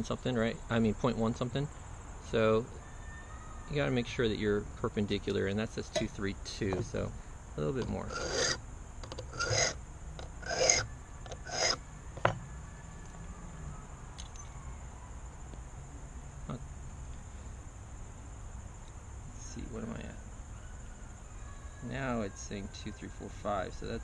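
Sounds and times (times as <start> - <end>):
file rasping on brass: 8.1 - 8.6, 9.2 - 9.8, 10.4 - 11.8.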